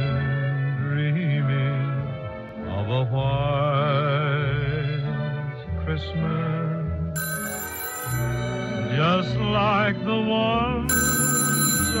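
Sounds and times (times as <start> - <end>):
telephone ringing: 7.2 - 9.8, 10.9 - 12.0
background music wavering melody: 7.2 - 12.0.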